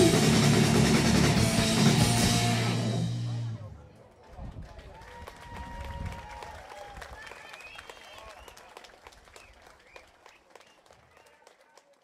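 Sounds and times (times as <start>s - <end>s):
amplified rock band notes: 0.0s - 3.7s
audience applause: 4.2s - 12.0s.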